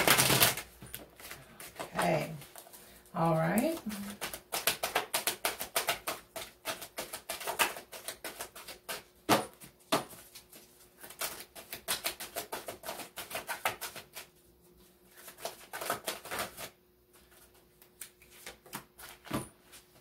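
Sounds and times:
cards being shuffled: 0:00.0 - 0:02.7, 0:03.6 - 0:14.3, 0:15.1 - 0:19.9.

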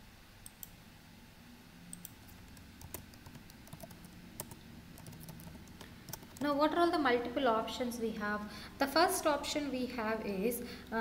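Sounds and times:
computer keyboard keystrokes: 0:01.9 - 0:06.5.

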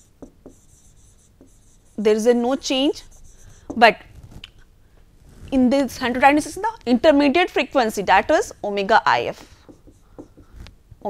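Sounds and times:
stylus scratching and tapping: 0:00.0 - 0:04.6, 0:09.2 - 0:11.0.

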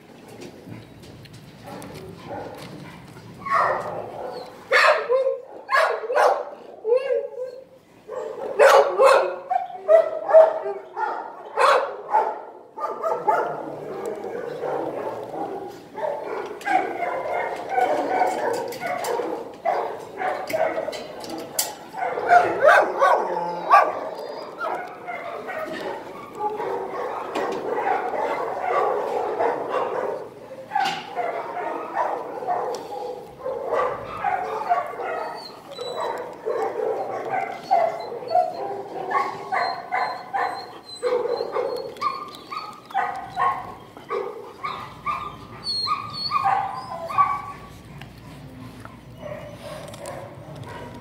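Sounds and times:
dogs barking: 0:01.6 - 0:47.8, 0:49.0 - 0:51.0.

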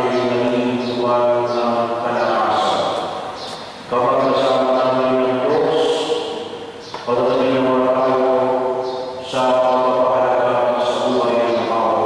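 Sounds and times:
man chanting through microphone: 0:00.0 - 0:12.0.

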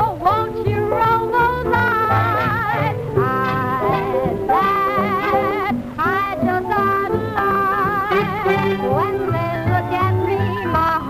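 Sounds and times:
instrumental accompaniment: 0:00.0 - 0:11.0
woman singing with vibrato: 0:00.0 - 0:11.0.

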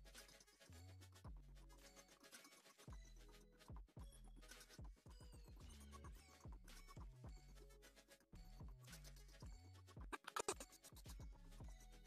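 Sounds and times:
faint music with kick drums and bass: 0:00.0 - 0:01.8, 0:02.9 - 0:12.0.

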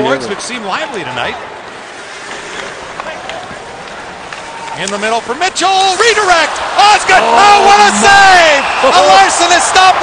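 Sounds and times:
skates on ice: 0:01.6 - 0:07.2.

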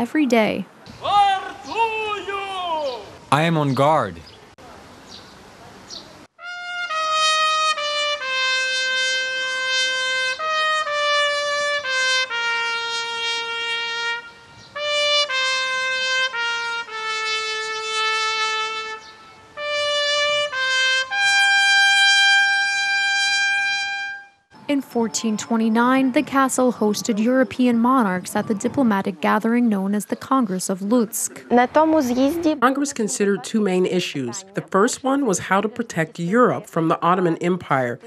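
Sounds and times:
trumpet playing slow melody: 0:06.4 - 0:24.5.

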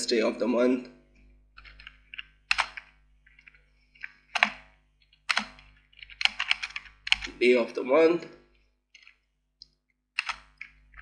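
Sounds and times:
keyboard keys clacking: 0:01.6 - 0:07.8.

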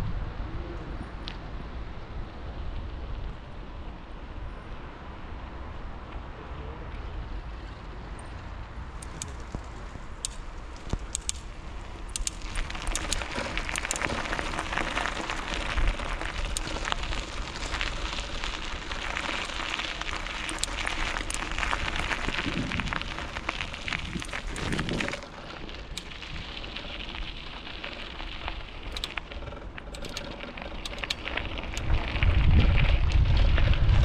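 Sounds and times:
gravel crunching under movement: 0:00.0 - 0:34.0.

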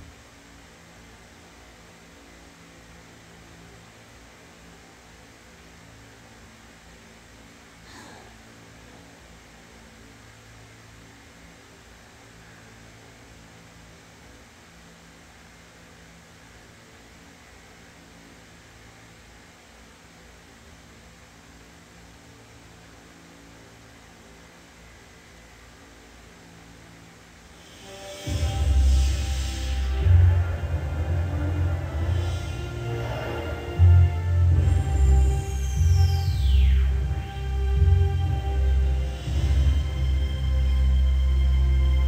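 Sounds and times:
low electrical hum: 0:00.0 - 0:42.0
hiss: 0:27.4 - 0:37.7.

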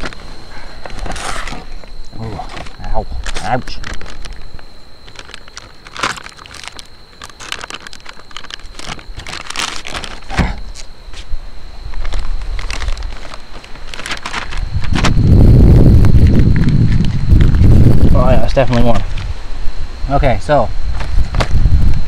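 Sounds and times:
packaging crinkling and rustling: 0:00.0 - 0:11.3, 0:11.9 - 0:15.3, 0:16.0 - 0:17.8.

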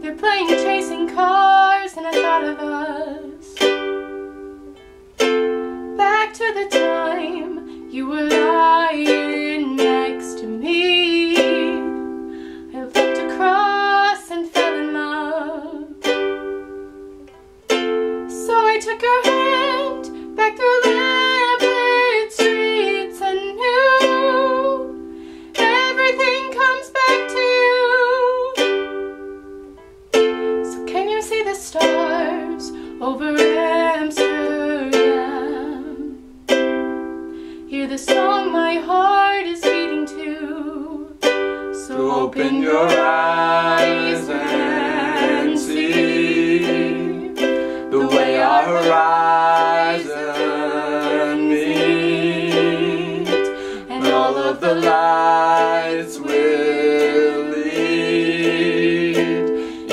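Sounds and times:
person singing: 0:00.0 - 0:29.0, 0:30.2 - 0:59.9
ukulele strumming: 0:00.0 - 0:59.9.

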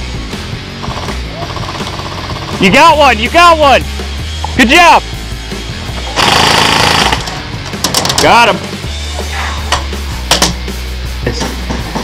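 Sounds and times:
background music with bass: 0:00.0 - 0:12.0
airsoft gun full-auto burst: 0:06.2 - 0:07.3.

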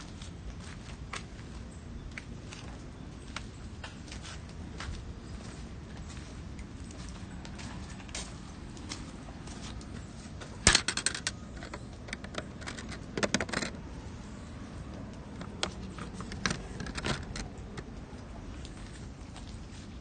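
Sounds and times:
low background noise: 0:00.0 - 0:20.0
small clicks and rattles: 0:10.6 - 0:13.8, 0:15.3 - 0:18.2.

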